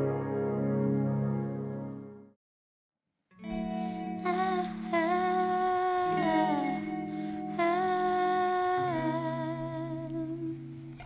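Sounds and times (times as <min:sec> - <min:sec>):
musical intro jingle: 0:00.0 - 0:02.4.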